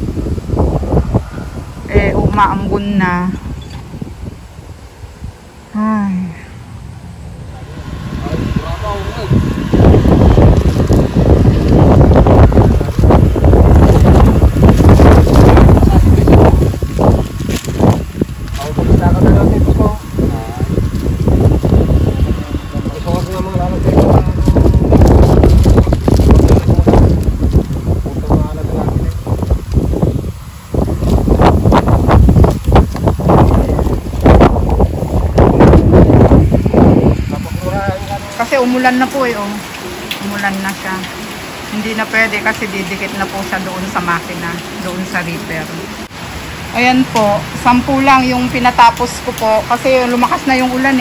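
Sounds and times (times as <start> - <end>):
low background rumble: 0.0 - 50.3
wind buffeting microphone: 0.0 - 51.0.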